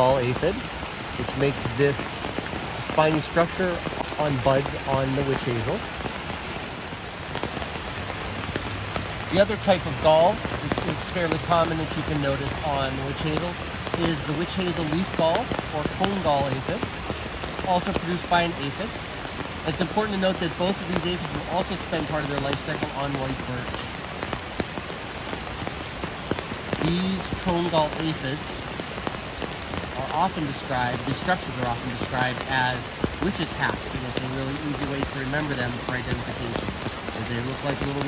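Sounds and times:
rain falling on leaves: 0.0s - 38.0s.

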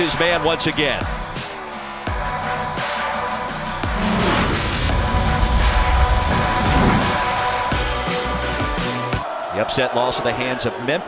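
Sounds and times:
high sweep: 1.4s - 9.1s
electronic transition music: 2.6s - 8.7s.

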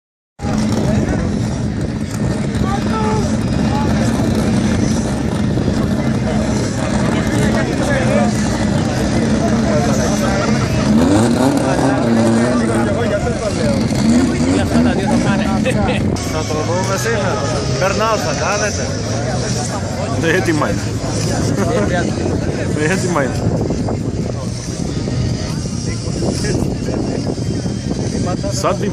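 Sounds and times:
race car engines idling: 0.4s - 28.9s
people talking: 0.5s - 28.9s.

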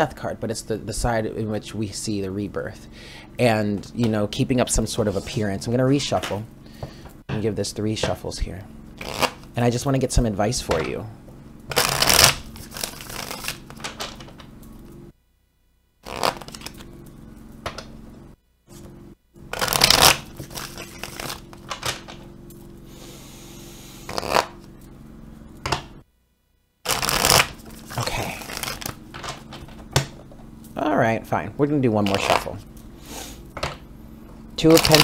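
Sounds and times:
cards being shuffled: 9.0s - 9.5s, 11.7s - 14.5s, 16.0s - 16.9s, 19.5s - 22.6s, 24.0s - 24.7s, 26.9s - 30.1s, 32.0s - 33.4s, 34.6s - 35.0s.

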